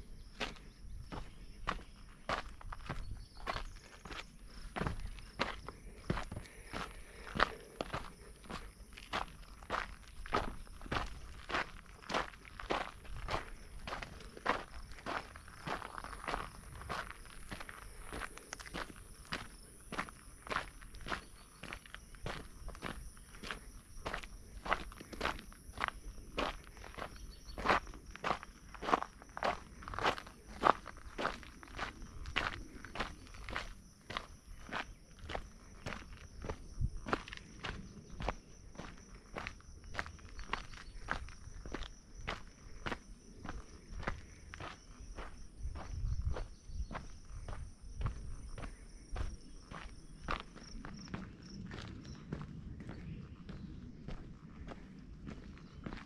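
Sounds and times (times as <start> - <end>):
footsteps on dirt trail: 0.0 - 56.0.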